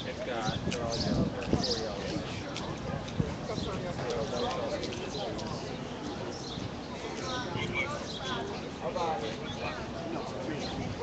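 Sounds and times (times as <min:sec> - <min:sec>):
chatter of several people: 0:00.0 - 0:11.0.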